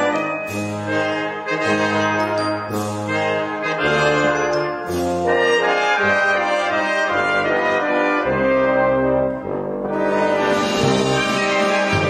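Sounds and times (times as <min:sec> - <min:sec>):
brass chords: 0:00.0 - 0:12.0.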